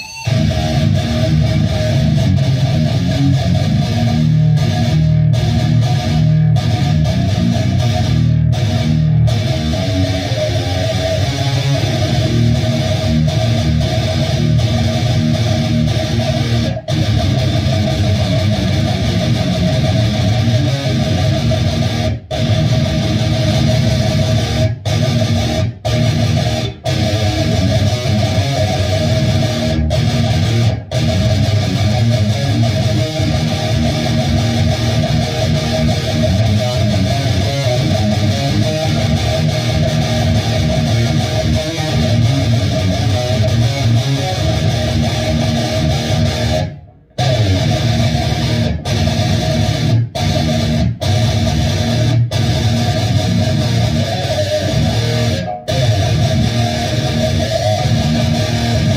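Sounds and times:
electric guitar riffing: 0:00.0 - 0:58.9.

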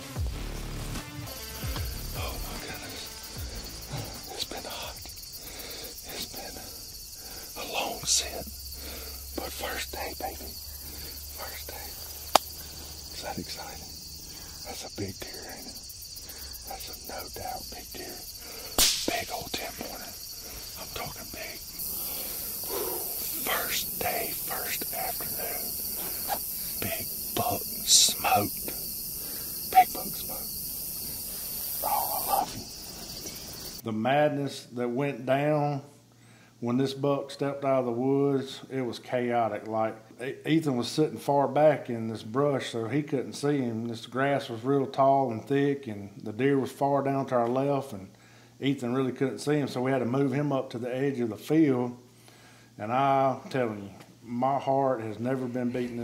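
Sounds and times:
crickets chirping: 0:00.0 - 0:36.7
low voices: 0:01.7 - 0:30.5, 0:31.7 - 0:33.6
sharp clicks: 0:12.2 - 0:12.6, 0:18.8 - 0:19.6.

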